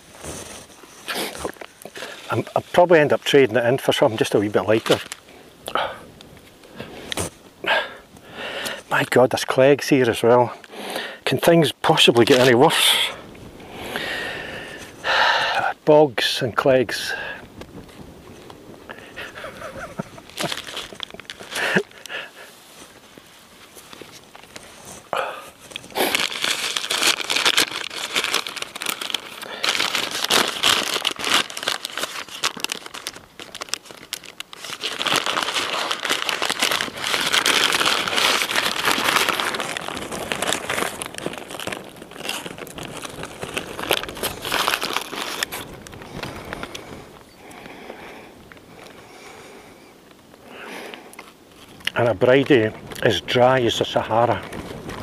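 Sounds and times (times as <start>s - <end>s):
paper wrapper crinkling: 0.0s - 5.3s, 12.0s - 13.1s, 17.6s - 47.6s, 51.2s - 55.0s.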